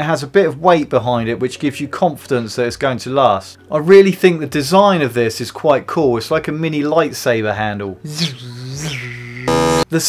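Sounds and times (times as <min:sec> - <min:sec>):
loud electric buzz: 0:09.5 - 0:09.9.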